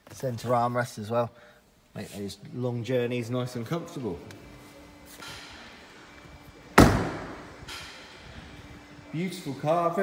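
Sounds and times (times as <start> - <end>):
car door slamming: 6.8 - 7.5.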